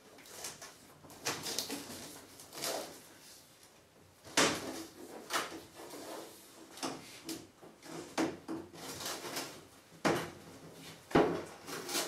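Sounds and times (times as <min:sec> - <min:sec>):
rubber seal tearing scrape: 0:11.6 - 0:12.0.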